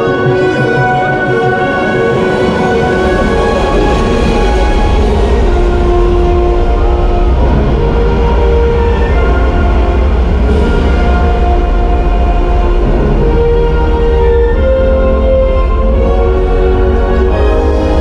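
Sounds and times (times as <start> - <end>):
loud steady low rumble: 0.0 - 18.0
orchestral music with held notes: 0.0 - 18.0.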